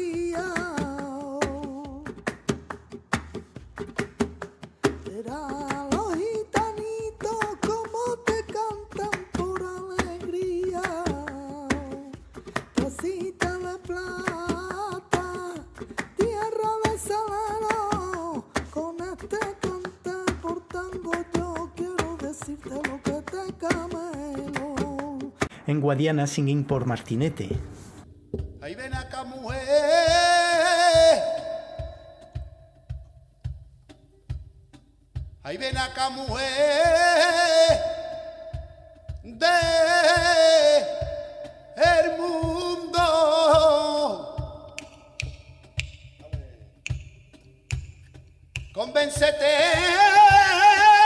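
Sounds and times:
hand claps: 0:00.0 - 0:25.6, 0:35.8 - 0:51.0
man singing flamenco: 0:00.0 - 0:26.8, 0:28.5 - 0:33.1, 0:35.4 - 0:47.2, 0:48.6 - 0:51.0
dull percussion knocks: 0:27.5 - 0:30.2.

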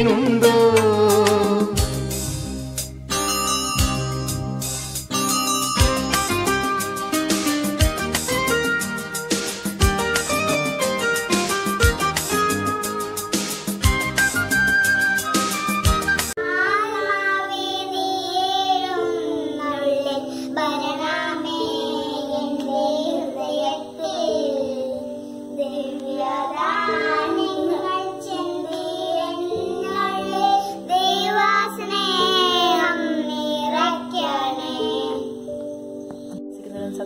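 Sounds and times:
held backing chords: 0:00.0 - 0:37.0
child singing slow melody: 0:16.4 - 0:35.8.

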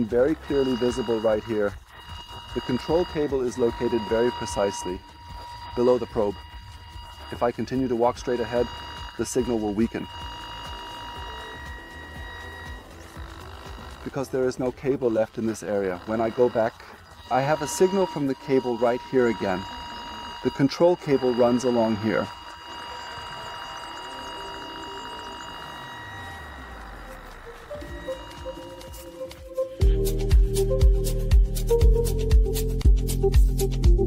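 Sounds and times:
electronic signal tone: 0:00.0 - 0:32.4
background music: 0:00.0 - 0:34.0.

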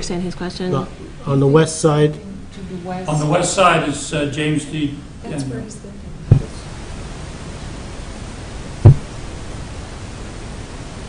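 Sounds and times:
background recording hiss: 0:00.0 - 0:11.0
loud low thump: 0:06.3 - 0:06.6, 0:08.8 - 0:09.4.

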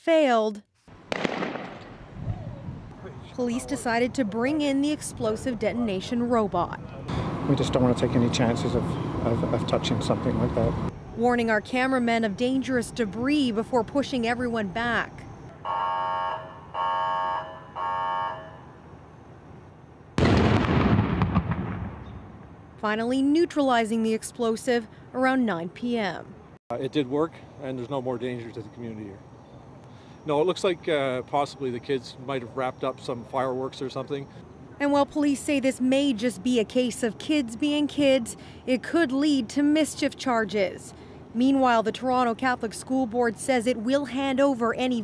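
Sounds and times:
sharp crack: 0:01.1 - 0:02.0, 0:20.2 - 0:22.5
explosion bang: 0:01.1 - 0:02.4, 0:20.2 - 0:22.3
warning horn blasts: 0:15.5 - 0:18.8.

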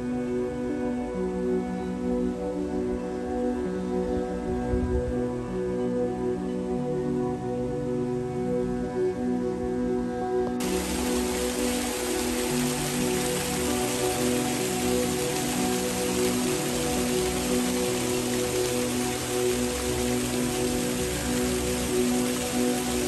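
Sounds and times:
slow background music: 0:00.0 - 0:23.0
fountain water splashing: 0:10.6 - 0:23.0.

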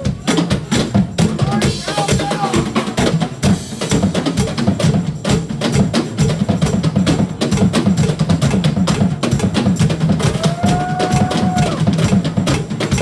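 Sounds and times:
fast drum hits: 0:00.0 - 0:13.0.

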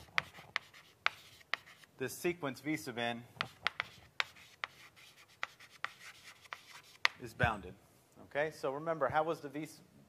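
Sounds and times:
chalk scratching: 0:00.0 - 0:01.9, 0:03.4 - 0:07.3
chalk tapping on blackboard: 0:00.0 - 0:01.9, 0:03.4 - 0:07.4.

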